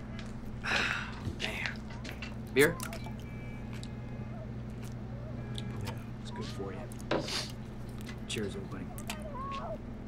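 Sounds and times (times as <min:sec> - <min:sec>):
drink coolers humming: 0:00.0 - 0:10.0.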